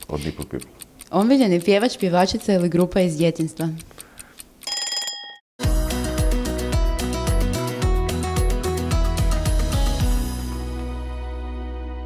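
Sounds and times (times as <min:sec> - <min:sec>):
stopwatch ticking: 0:00.0 - 0:05.4.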